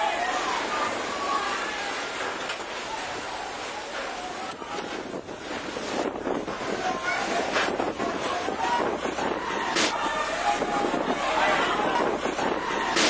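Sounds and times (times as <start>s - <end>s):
rain: 0.0s - 13.0s
wind buffeting microphone: 2.9s - 13.0s
people's raised voices: 6.4s - 13.0s.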